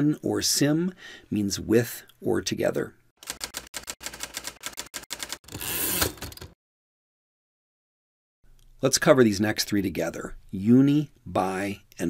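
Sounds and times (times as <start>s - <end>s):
longer steady typewriter noise: 3.2s - 6.6s
typewriter keystrokes: 3.2s - 6.6s.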